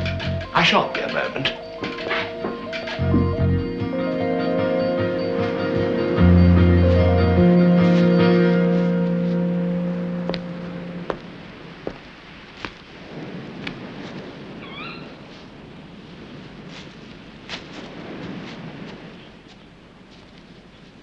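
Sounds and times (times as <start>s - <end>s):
high wavering animal call: 0.0s - 11.1s, 14.5s - 15.3s
background music: 0.0s - 11.2s
rustling hiss: 0.0s - 21.0s.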